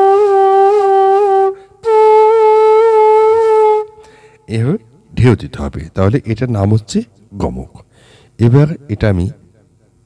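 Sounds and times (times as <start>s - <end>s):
bamboo flute notes with pitch wobbles: 0.0s - 4.0s.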